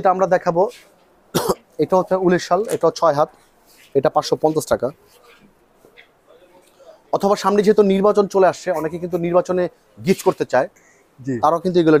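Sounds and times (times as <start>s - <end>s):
man speaking: 0.0s - 5.4s, 6.0s - 12.0s
person coughing: 1.3s - 1.7s.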